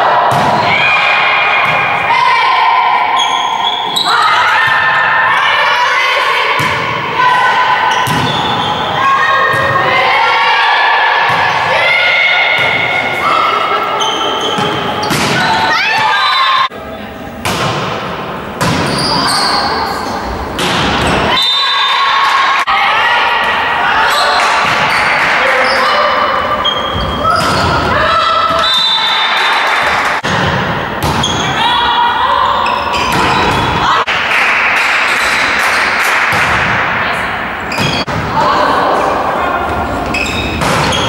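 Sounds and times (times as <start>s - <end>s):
players calling out: 0.0s - 17.4s, 18.4s - 41.0s
sports hall noise: 0.0s - 41.0s.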